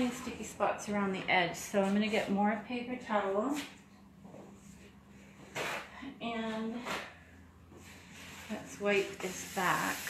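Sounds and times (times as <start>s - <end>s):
woman speaking: 0.0s - 3.7s, 6.0s - 7.0s, 8.5s - 10.0s.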